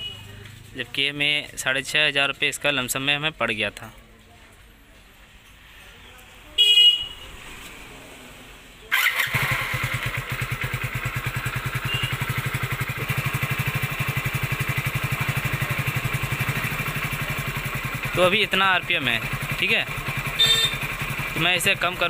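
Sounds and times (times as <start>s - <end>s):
motorcycle engine starting and idling: 8.9s - 22.0s
loud beep: 11.8s - 12.2s, 20.4s - 20.8s.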